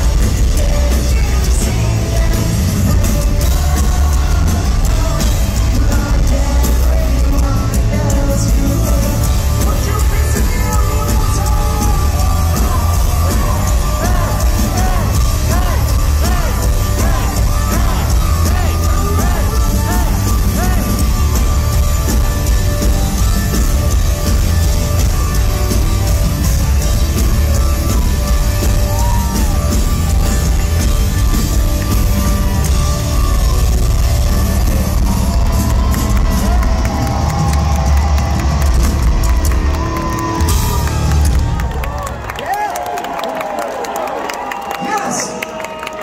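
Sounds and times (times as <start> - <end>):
pop-punk band playing live: 0.0 - 42.4
crowd cheering: 0.0 - 46.0.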